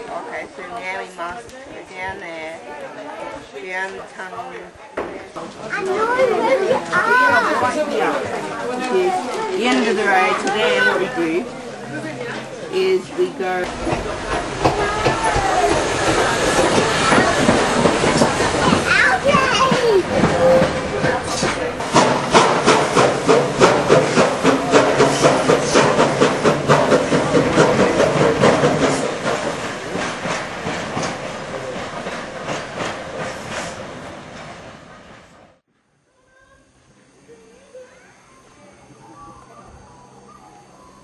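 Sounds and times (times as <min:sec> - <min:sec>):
steam train chugging: 0:04.3 - 0:41.0.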